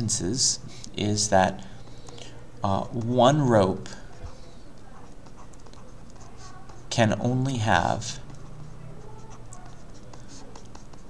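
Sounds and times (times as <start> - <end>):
stylus scratching on tablet: 1.7 - 11.0.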